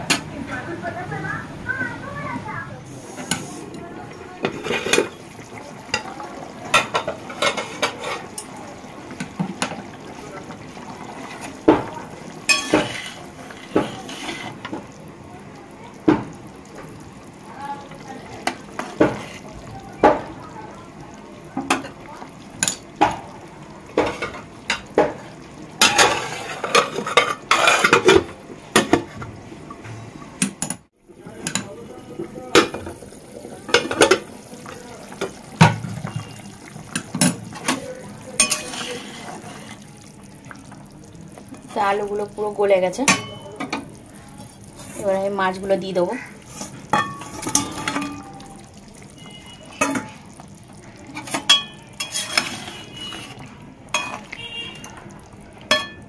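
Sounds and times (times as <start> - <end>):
food simmering sizzle: 0.0 - 56.0
metal spatula scraping a pan: 4.4 - 5.2, 6.8 - 8.5, 12.4 - 14.7, 25.8 - 28.2, 35.7 - 39.8, 51.2 - 54.3
metal lid clattering on pan: 12.5 - 13.1.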